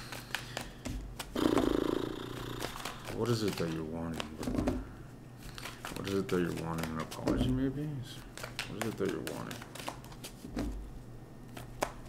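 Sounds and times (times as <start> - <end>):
cards clicking and tapping: 0.0 - 4.9, 5.5 - 7.7, 8.3 - 10.8, 11.5 - 12.0
man humming with closed lips: 1.3 - 3.1.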